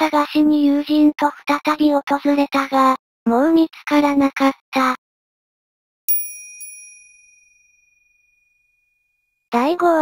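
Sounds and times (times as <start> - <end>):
high bell chime: 6.1 - 9.4.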